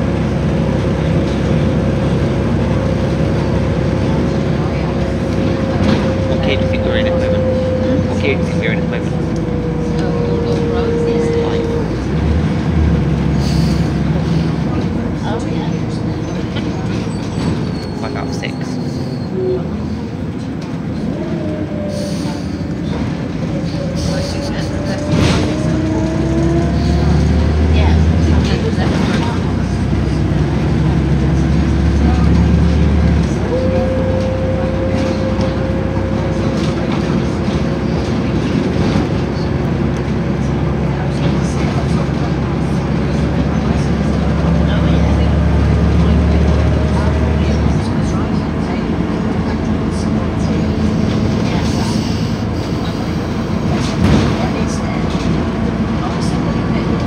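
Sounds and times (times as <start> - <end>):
bus diesel engine running: 0.0 - 57.0
whining engine note: 1.9 - 13.3, 31.0 - 36.9.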